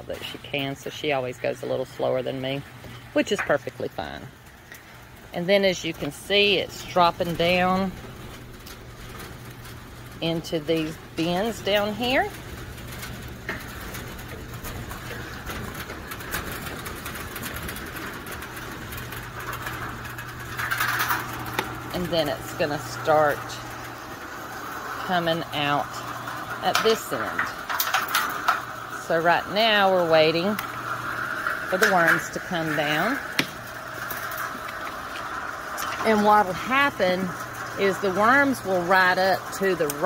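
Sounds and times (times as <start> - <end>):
castings sifting and falling: 0.0 - 40.0
trommel drive humming: 0.0 - 40.0.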